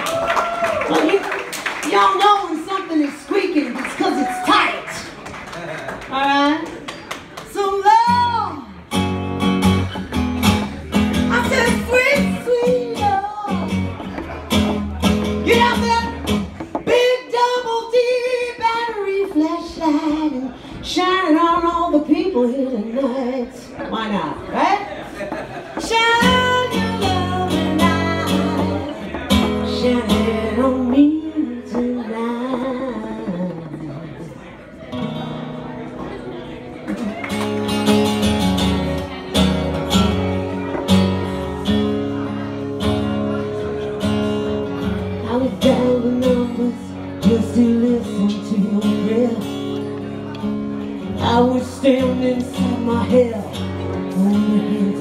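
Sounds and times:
strummed acoustic guitar: 8.8 - 20.5, 25.4 - 55.0
woman singing: 11.3 - 13.7, 15.4 - 24.1, 25.8 - 34.0, 45.2 - 49.7, 51.0 - 55.0.

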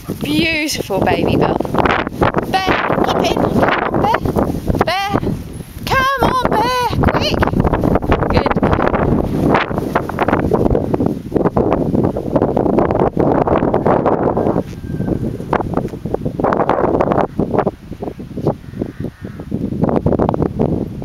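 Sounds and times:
gusty wind buffeting microphone: 0.0 - 21.0.

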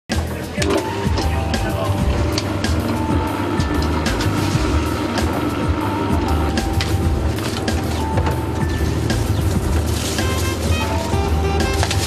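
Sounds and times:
background music with beat: 0.1 - 12.0
stand mixer motor humming: 1.0 - 10.6.

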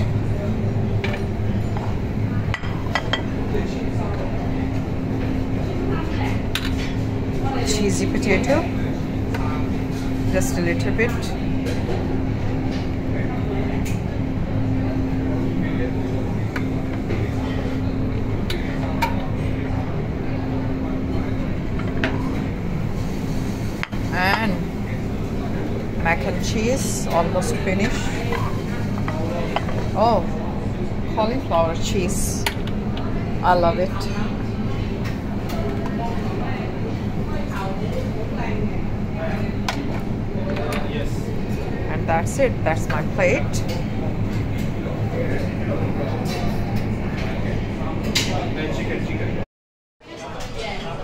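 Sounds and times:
murmur of voices: 0.0 - 49.4, 50.0 - 51.0
steady low hum: 0.0 - 49.4.

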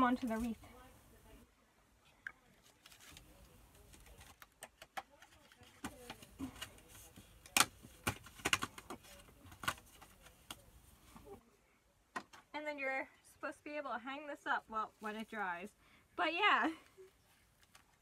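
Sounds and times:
stickers peeling and paper crinkling: 2.6 - 11.2.

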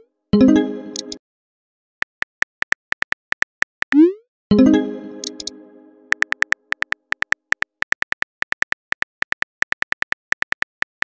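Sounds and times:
short high typing beeps: 0.9 - 1.2, 5.2 - 5.5.

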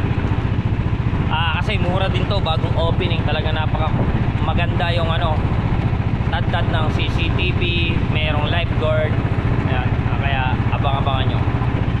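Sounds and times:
small boat engine throbbing: 0.0 - 12.0
man's voice: 1.3 - 5.4.

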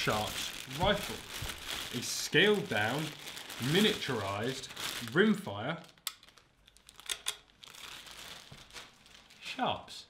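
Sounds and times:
plastic bag crinkling: 0.0 - 9.6.

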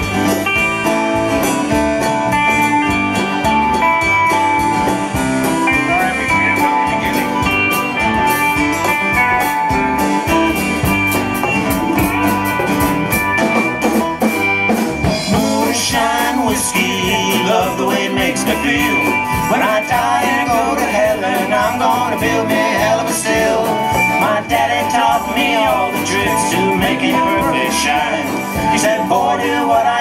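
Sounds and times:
band playing country-rock: 0.0 - 30.0
bending guitar lead line: 0.0 - 30.0.

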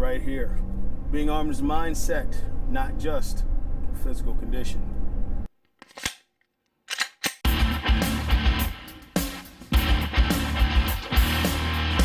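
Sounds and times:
rock music with electric guitar: 7.5 - 12.0.

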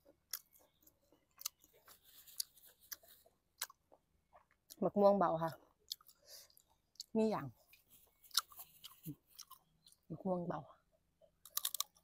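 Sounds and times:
chewing and mouth sounds: 0.0 - 4.8, 5.5 - 10.1
small crunches: 0.1 - 4.8, 7.7 - 10.0, 11.4 - 12.0.

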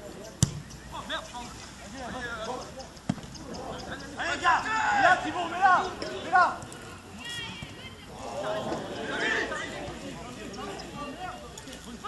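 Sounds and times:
football kicked on grass: 0.4 - 0.7
players shouting: 3.4 - 12.0.

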